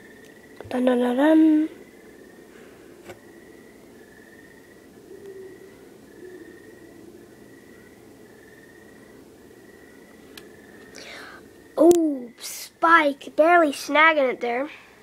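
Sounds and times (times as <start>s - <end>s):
crickets chirping: 0.0s - 15.0s.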